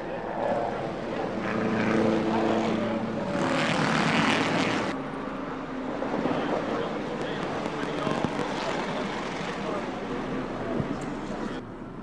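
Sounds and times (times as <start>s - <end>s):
voices: 6.0s - 11.6s.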